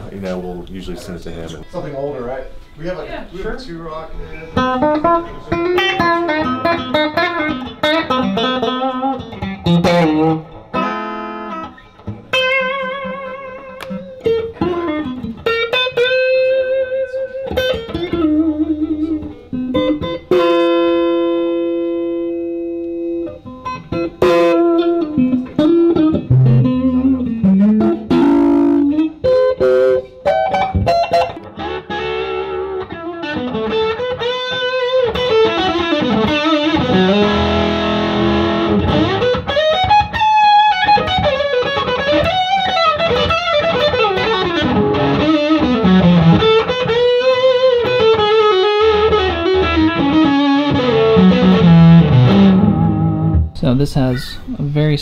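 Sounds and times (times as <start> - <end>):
electric guitar through amplifier: 3.9 - 55.0.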